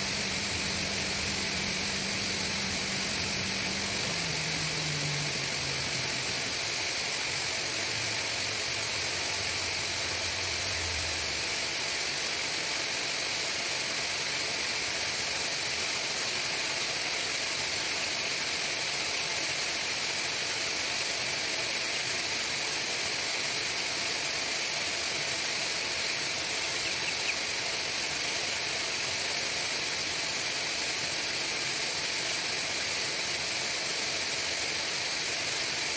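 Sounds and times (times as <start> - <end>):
ventilation system running: 0.0 - 35.9
chicks peeping: 26.6 - 27.5.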